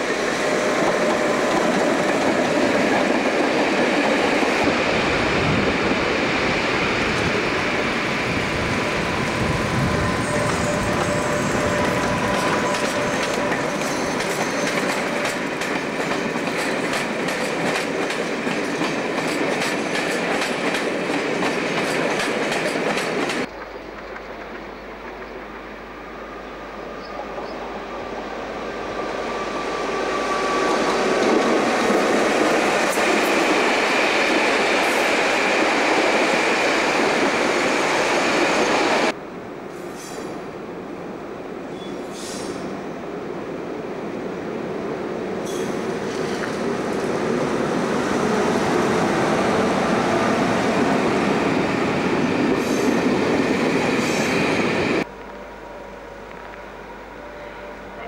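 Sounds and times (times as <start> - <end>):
train passing: 0.0 - 58.0
train wheel squeals: 7.6 - 17.0, 28.9 - 31.8, 39.8 - 40.4, 41.6 - 42.7, 45.4 - 46.5.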